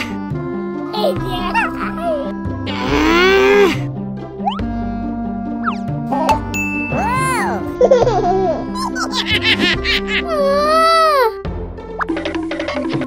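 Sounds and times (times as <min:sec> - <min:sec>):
cartoon background music: 0:00.0 - 0:13.0
wavering cartoon cry: 0:10.1 - 0:11.4.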